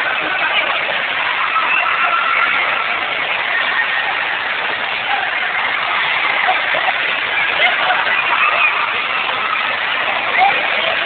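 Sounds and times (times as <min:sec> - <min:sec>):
many distant voices: 0:00.0 - 0:11.0
rushing water: 0:00.0 - 0:11.0.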